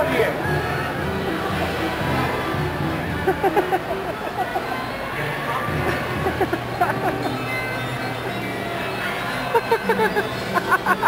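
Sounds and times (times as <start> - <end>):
carousel music: 0.0 - 11.0
people's voices: 0.0 - 11.0
bursts of laughter: 5.9 - 7.5, 9.4 - 11.0.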